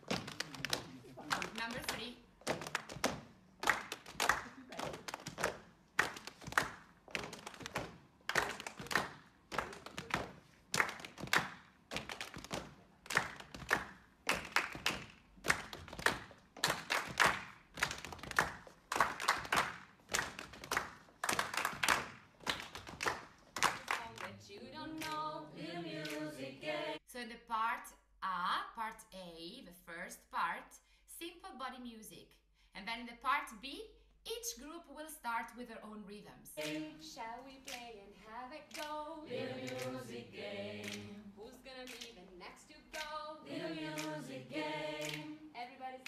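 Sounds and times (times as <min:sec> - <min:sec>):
hand claps: 0:00.0 - 0:24.3, 0:25.0 - 0:25.3, 0:26.0 - 0:26.4, 0:37.6 - 0:37.9, 0:38.7 - 0:39.0, 0:39.6 - 0:40.2, 0:40.8 - 0:41.2, 0:41.8 - 0:42.2, 0:42.9 - 0:43.2, 0:43.8 - 0:45.4
people singing: 0:24.2 - 0:27.0, 0:36.6 - 0:46.0.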